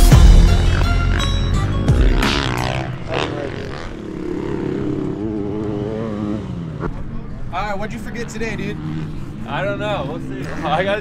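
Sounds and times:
background music: 0.0s - 3.9s
dirt bike engine revving and passing: 0.4s - 11.0s.

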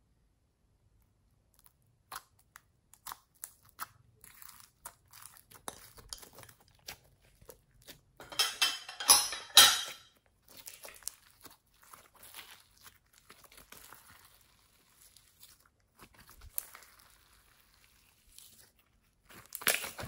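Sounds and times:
slime crackling and popping: 1.4s - 8.2s, 10.3s - 20.0s.

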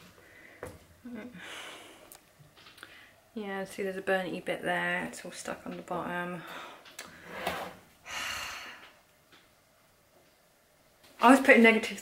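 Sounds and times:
woman breathing noisily: 0.2s - 2.2s, 8.0s - 9.0s.

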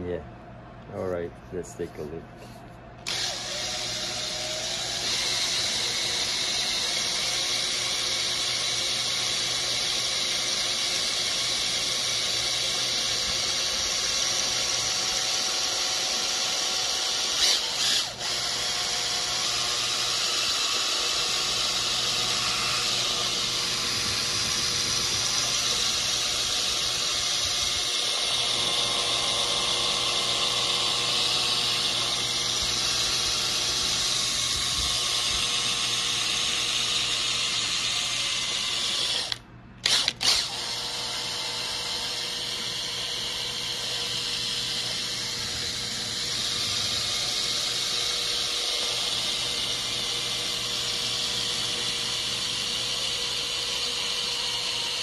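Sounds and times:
power drill mixing paint: 3.0s - 55.0s.

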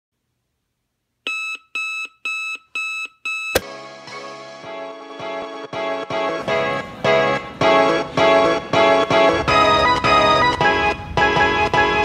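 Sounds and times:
alarm clock beeping: 1.3s - 3.6s
music: 3.6s - 12.0s.

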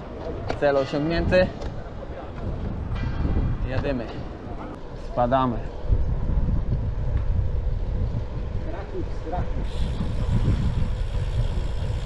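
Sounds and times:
wind rumble on microphone: 0.3s - 12.0s
bike tyres rolling on pavement: 4.8s - 12.0s.

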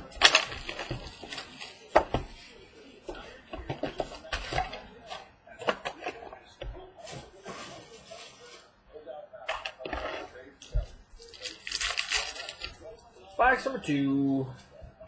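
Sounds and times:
wrapper crinkly rustles: 0.0s - 1.9s, 11.2s - 13.2s.

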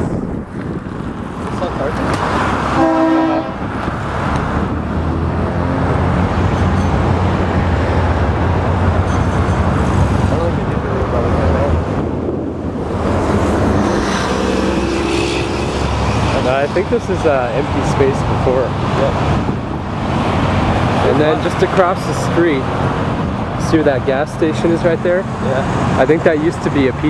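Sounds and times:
road traffic rumble: 0.0s - 27.0s
vehicle horn toot: 2.8s - 3.6s.

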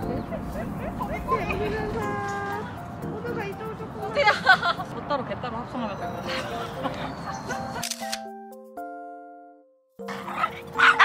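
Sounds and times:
voices outdoors: 0.0s - 8.1s, 10.1s - 11.0s
camera shutter clicks: 7.8s - 8.3s.

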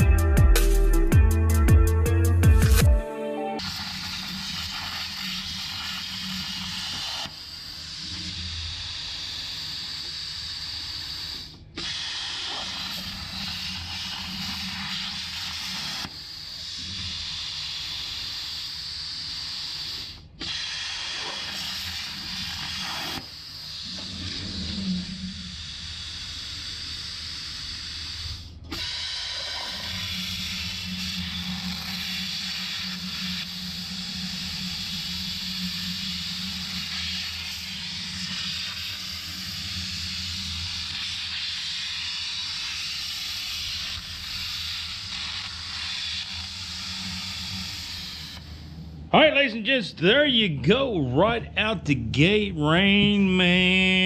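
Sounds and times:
plasma torch hissing: 3.6s - 49.0s.

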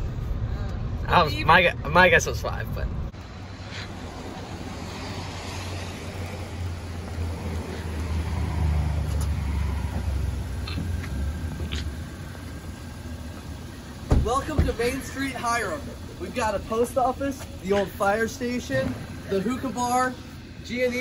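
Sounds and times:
car engine rumble: 0.0s - 21.0s
car door clicks: 14.0s - 14.8s.

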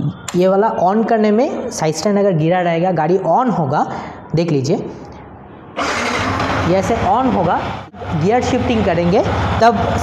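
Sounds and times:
motorcycle engine starting: 5.8s - 7.0s.

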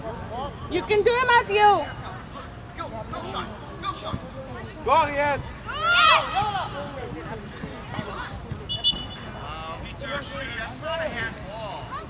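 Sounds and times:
distant shouting: 5.4s - 10.8s
referee's whistle blast: 8.7s - 9.3s.

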